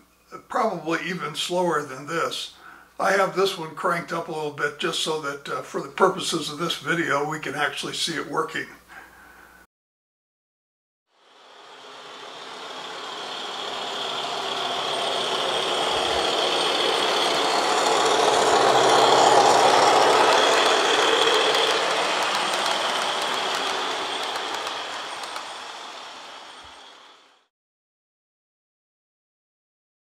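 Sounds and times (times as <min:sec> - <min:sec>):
model train rolling on track: 0:03.0 - 0:06.8, 0:11.3 - 0:27.5.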